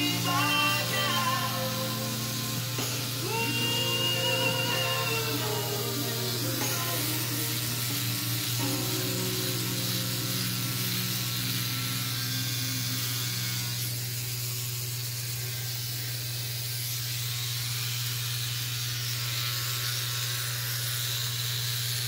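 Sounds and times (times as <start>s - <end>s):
electric trimmer buzzing: 0.0s - 22.0s.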